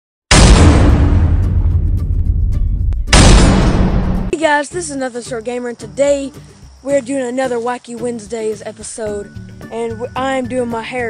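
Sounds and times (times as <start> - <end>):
explosion-like boom: 0.3 - 4.3
loud boom: 0.3 - 4.3.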